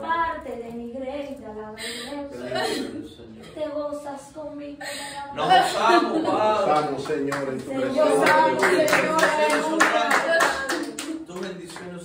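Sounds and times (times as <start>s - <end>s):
hands clapping: 6.6s - 12.0s.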